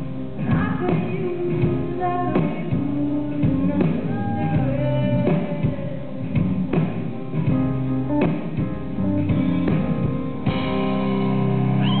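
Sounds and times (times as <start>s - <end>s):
piano and band music: 0.0s - 12.0s.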